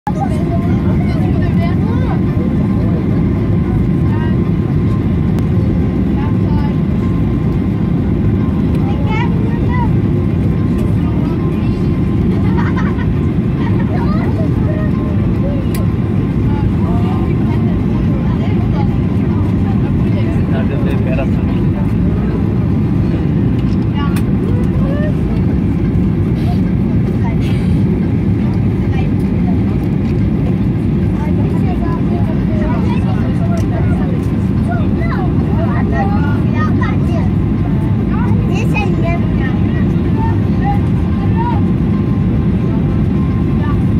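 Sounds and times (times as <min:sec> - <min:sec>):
faint passenger voices: 0:00.1 - 0:43.9
jet airliner cabin hum: 0:00.1 - 0:43.9.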